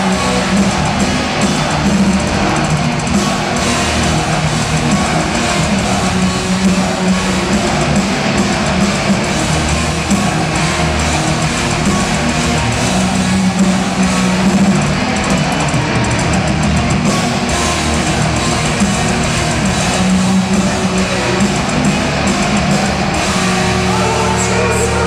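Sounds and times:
bass: 0.0s - 25.0s
distorted electric guitars: 0.0s - 25.0s
drums: 0.0s - 25.0s.

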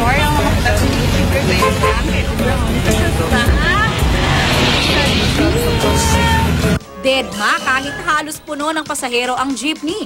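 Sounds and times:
road noise: 0.0s - 6.9s
vehicle engine rumble: 0.8s - 6.8s.

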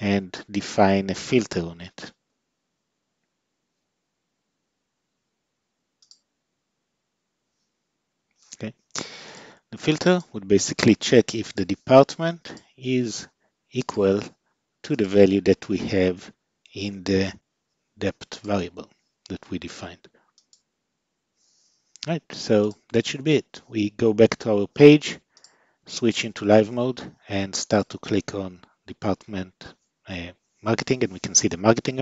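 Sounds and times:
computer mouse click: 6.0s - 6.2s, 20.4s - 20.7s.

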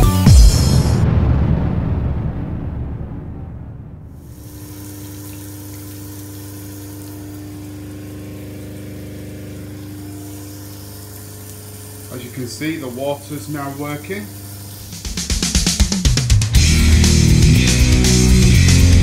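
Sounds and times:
background music: 0.0s - 1.1s, 15.0s - 19.0s
water hissing from shower head: 4.2s - 18.9s
electric water pump humming: 4.2s - 19.0s.

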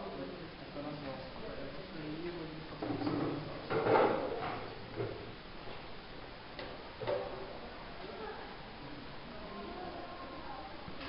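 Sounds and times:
desks and chairs knocking and scraping: 2.8s - 5.2s.

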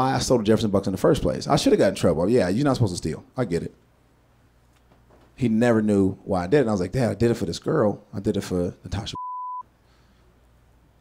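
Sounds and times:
censor bleep: 9.2s - 9.7s.

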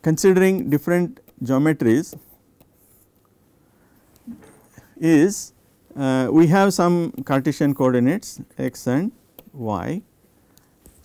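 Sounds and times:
man speaking: 0.0s - 2.3s, 5.0s - 10.1s
stylus tapping and scratching tablet: 0.2s - 3.4s, 7.0s - 7.9s, 8.6s - 9.6s, 10.6s - 11.0s.

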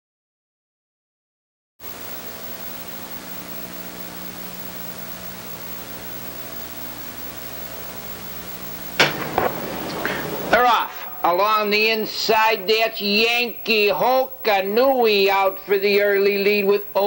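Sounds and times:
tape hiss: 1.8s - 17.0s
faint low hum: 2.2s - 17.0s
sudden loud sound: 9.0s - 11.2s.

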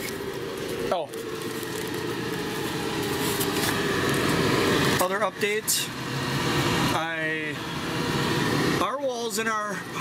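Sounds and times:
blower fan humming: 0.0s - 10.0s.

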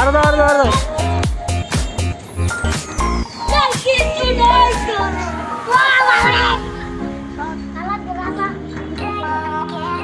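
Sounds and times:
music with deep bass: 0.0s - 10.0s
falling tone: 2.5s - 7.9s
children shouting excitedly: 3.4s - 6.8s.

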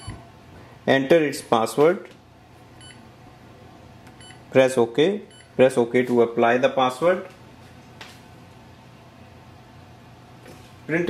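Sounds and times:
printer touchscreen key beep: 0.0s - 0.2s
low steady hum: 0.0s - 11.0s.

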